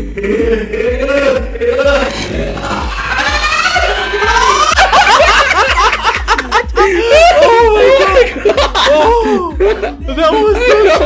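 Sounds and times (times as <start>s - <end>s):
people laughing: 0.0s - 11.0s.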